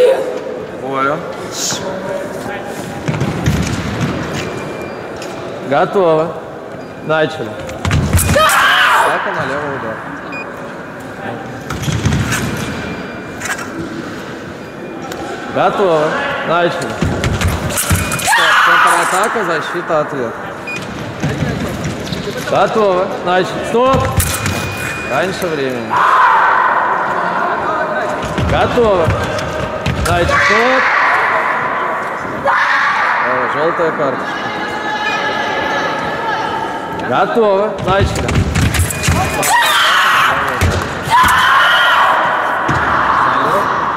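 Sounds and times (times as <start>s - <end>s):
general hall noise: 0.0s - 43.9s.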